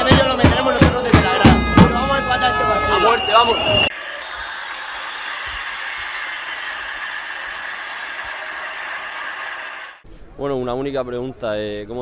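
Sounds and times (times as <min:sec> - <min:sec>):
stadium crowd noise on television: 0:00.7 - 0:10.7.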